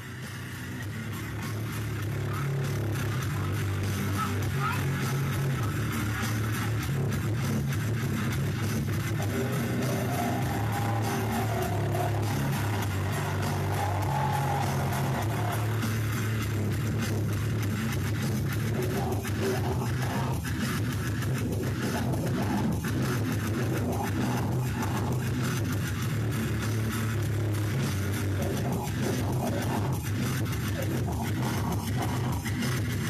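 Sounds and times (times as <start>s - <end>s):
bass guitar: 0.0s - 33.0s
distorted electric guitars: 0.0s - 33.0s
drums: 0.0s - 33.0s.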